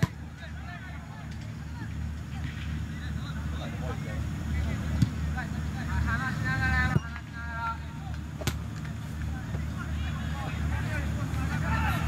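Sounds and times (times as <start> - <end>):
distant football players shouting: 6.6 - 12.0.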